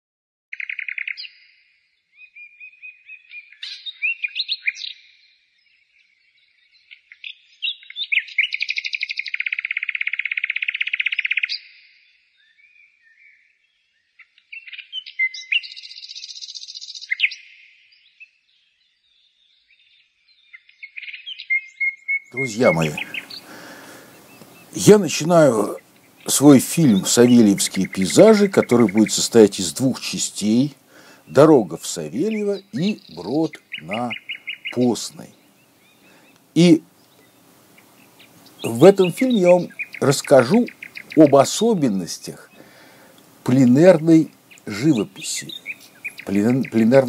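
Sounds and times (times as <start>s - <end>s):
songbird singing: 0.5s - 47.0s.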